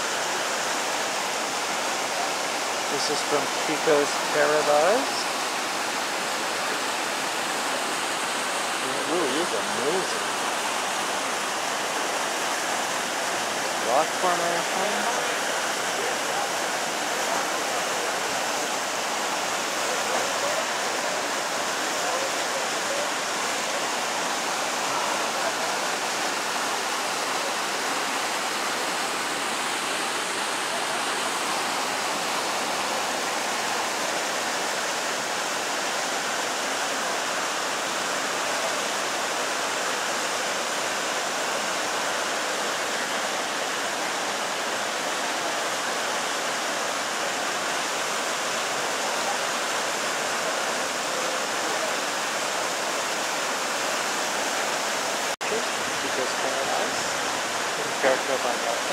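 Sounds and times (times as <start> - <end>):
river rushing over rocks: 0.0 - 58.9.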